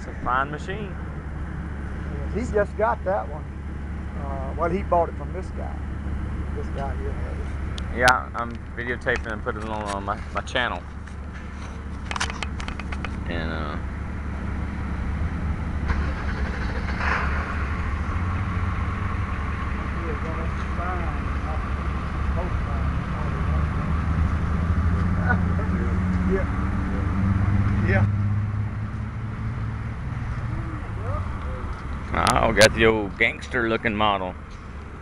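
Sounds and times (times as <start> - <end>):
vehicle engine idling: 0.0 - 35.0
faint voices talking: 30.4 - 34.4.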